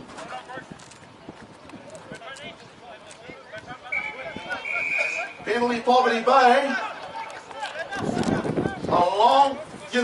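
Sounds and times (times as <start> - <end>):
faint voices of players: 0.0 - 10.0
referee whistle blasts: 3.9 - 5.4.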